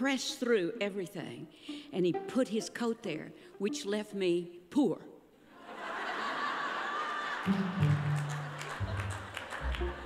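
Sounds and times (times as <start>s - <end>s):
audience laughing: 5.5s - 10.0s.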